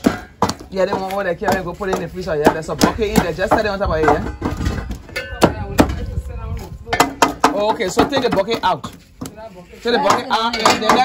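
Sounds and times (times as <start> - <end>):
utensil knocking metal pot: 0.0 - 6.1, 6.9 - 9.0, 10.0 - 11.0.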